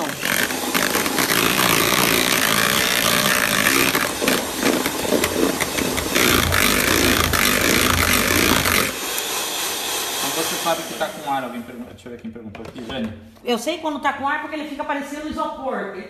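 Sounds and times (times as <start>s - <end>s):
electric mixer whipping cream: 0.0s - 11.8s.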